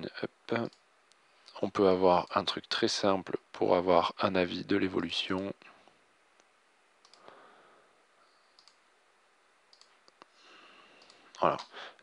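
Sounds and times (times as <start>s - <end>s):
computer mouse clicks: 6.4s - 7.3s, 8.5s - 8.8s, 9.7s - 10.3s, 11.0s - 11.8s.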